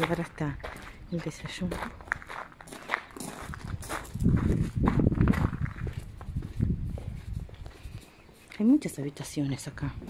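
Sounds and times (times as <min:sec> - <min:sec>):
footsteps crunching on gravel: 0:00.0 - 0:08.9
low rumble on microphone: 0:03.4 - 0:08.1.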